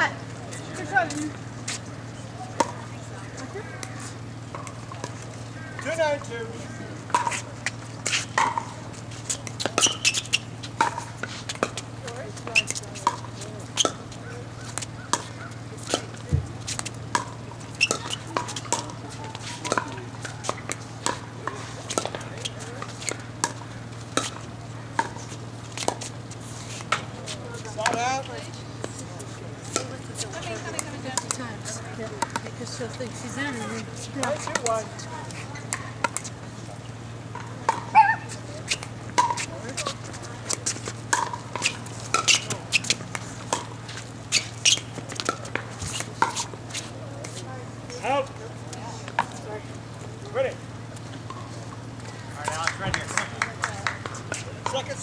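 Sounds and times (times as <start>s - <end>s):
steady low hum: 0.0s - 55.0s
paddles hitting plastic ball: 12.5s - 24.4s, 38.7s - 46.5s.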